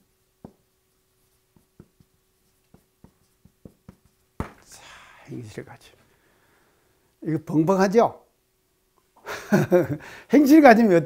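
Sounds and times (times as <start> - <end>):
marker squeaking on whiteboard: 1.2 - 4.6.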